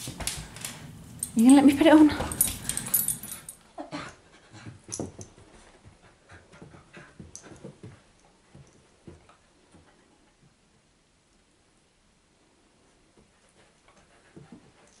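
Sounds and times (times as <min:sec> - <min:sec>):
puppies play-fighting: 0:02.1 - 0:04.8.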